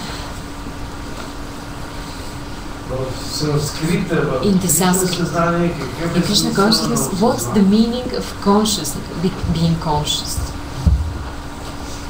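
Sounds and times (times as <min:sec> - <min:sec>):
low hum: 0:00.8 - 0:12.0.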